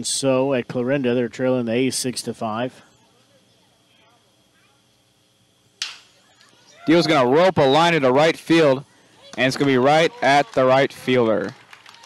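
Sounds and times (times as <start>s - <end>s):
faint ballpark background: 0.0s - 12.0s
baseball bat hitting ball: 5.8s - 6.2s.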